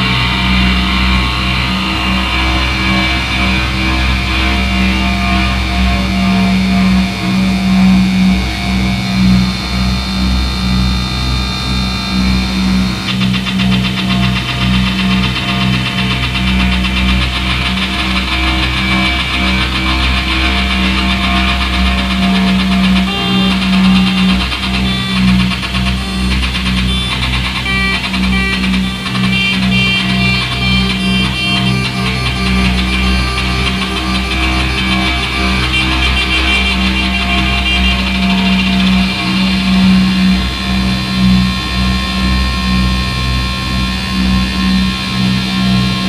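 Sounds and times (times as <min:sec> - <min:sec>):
electronic noise music: 0:00.0 - 0:46.0.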